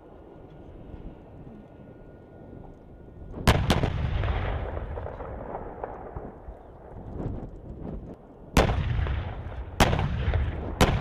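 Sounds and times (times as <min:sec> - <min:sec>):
tank guns firing blasts: 0:03.4 - 0:06.5, 0:08.6 - 0:11.0.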